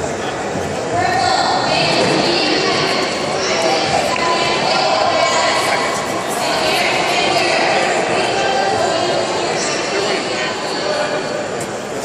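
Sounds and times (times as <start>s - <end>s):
people shouting in a large hall: 0.9s - 11.6s.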